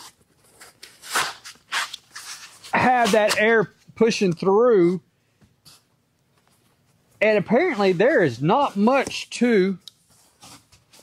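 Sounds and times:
foam packing rubbing and scraping: 0.0s - 3.6s.

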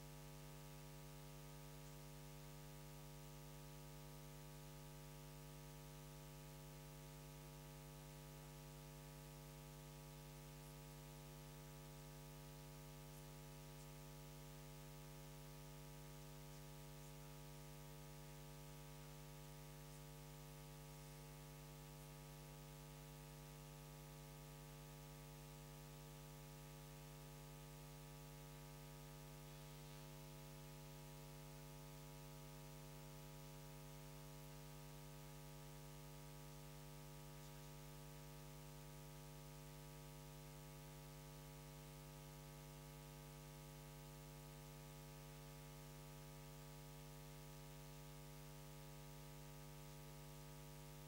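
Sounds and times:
faint electrical mains hum: 0.0s - 51.0s
low hiss: 0.0s - 51.0s.

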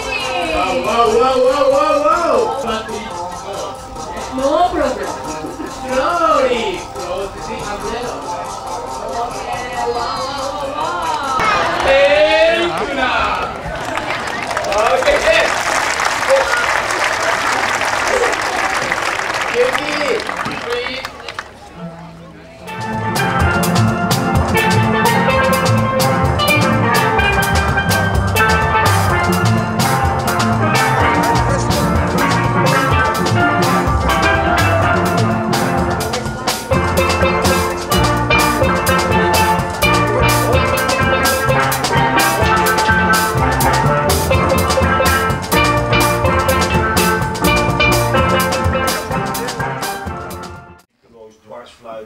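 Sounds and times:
steel pans playing melody: 0.0s - 12.8s, 21.8s - 50.9s
drum kit with cymbals: 22.7s - 50.8s.

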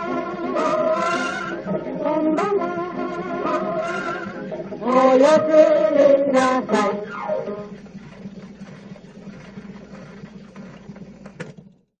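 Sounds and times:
record surface noise and crackle: 0.0s - 11.8s.

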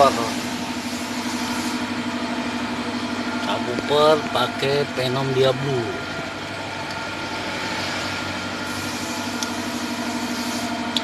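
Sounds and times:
steady mechanical hum: 0.0s - 11.0s
person speaking: 3.4s - 6.2s.

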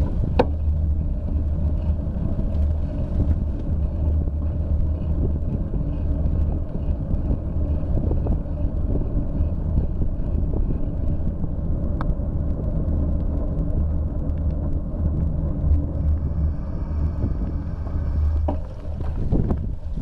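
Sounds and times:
bicycle tyres on damp asphalt: 0.0s - 20.0s
wind buffeting microphone: 0.0s - 20.0s.

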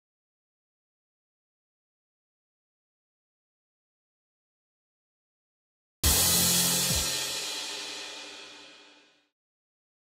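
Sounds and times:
cymbal crash with low boom: 6.0s - 9.2s.

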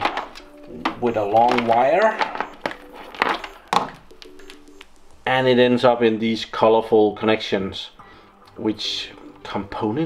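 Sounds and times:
cable and plug handling knocks: 0.0s - 4.3s.

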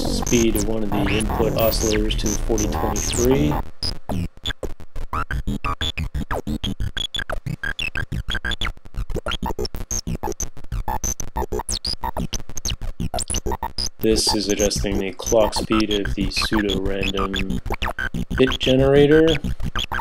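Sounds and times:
gliding synthesizer tones: 0.0s - 20.0s
rapid electronic clicks: 0.0s - 20.0s.

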